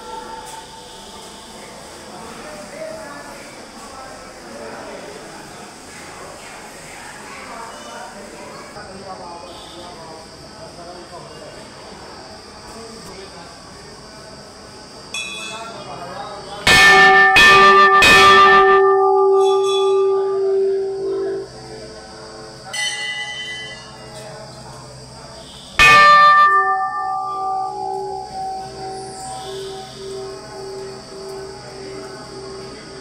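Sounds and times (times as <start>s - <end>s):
higher bell clangs: 15.2s - 15.8s, 16.7s - 21.6s, 22.7s - 24.1s, 25.8s - 33.0s
large bell ringing: 15.2s - 15.8s, 16.6s - 24.3s, 25.8s - 33.0s.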